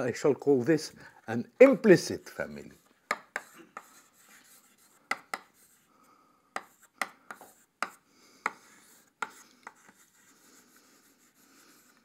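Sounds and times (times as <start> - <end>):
chalk scratching on chalkboard: 1.6 - 5.9, 6.6 - 12.0
chalk tapping on chalkboard: 2.8 - 5.8, 6.5 - 10.4.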